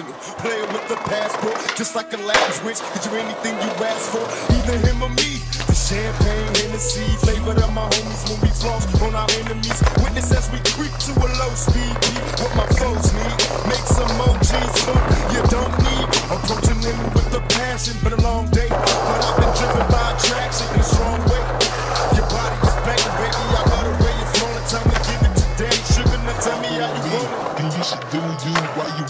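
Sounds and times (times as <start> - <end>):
skateboard clacks: 0.0 - 29.0
skateboard wheels rolling on concrete: 0.0 - 29.0
hip-hop beat with heavy bass: 0.4 - 27.3.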